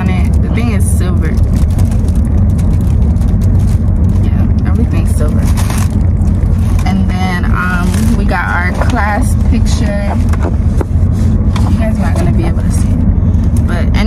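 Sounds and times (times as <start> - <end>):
car cabin low rumble: 0.0 - 14.0
plastic packaging crinkling: 0.2 - 6.8
papers rustling: 7.6 - 12.4.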